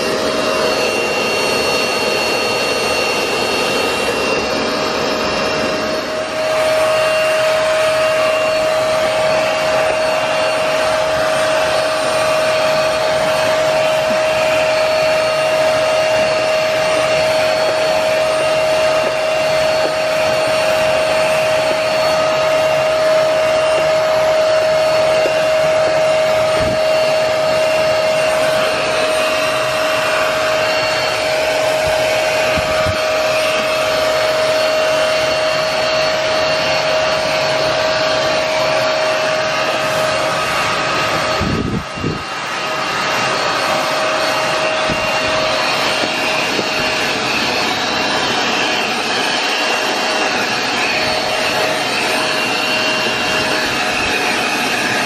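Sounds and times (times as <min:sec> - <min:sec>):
carpet cleaner motor whining: 0:00.0 - 0:55.0.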